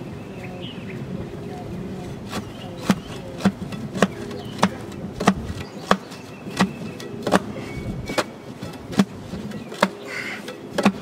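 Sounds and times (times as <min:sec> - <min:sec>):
tamping bar thudding on dirt: 0:02.2 - 0:11.0.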